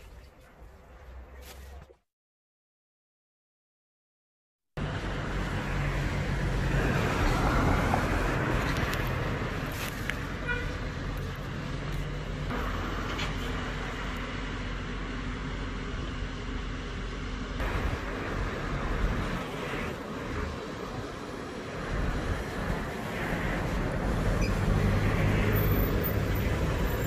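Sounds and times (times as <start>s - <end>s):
cars passing: 4.8s - 27.0s
low traffic rumble: 4.8s - 27.0s.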